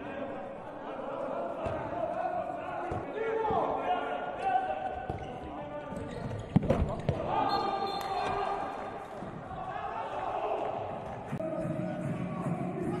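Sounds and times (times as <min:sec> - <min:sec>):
ball bouncing on court floor: 0:05.0 - 0:07.3
players shouting: 0:07.1 - 0:13.0.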